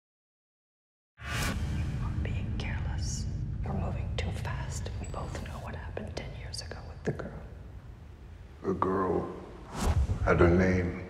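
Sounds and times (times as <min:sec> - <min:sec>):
steady low rumble: 0:01.4 - 0:11.0
woman whispering: 0:02.0 - 0:07.5.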